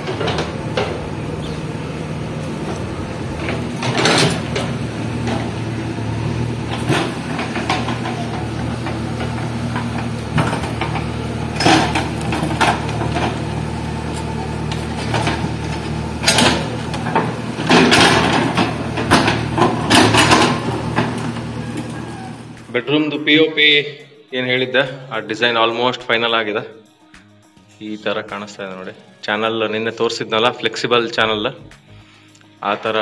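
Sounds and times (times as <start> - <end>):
diesel engine running under load: 0.0 - 22.8.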